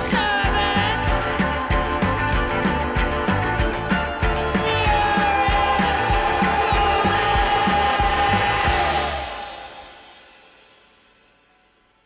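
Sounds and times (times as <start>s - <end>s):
live rock band playing: 0.0s - 10.3s
steady drum beat: 0.0s - 10.7s.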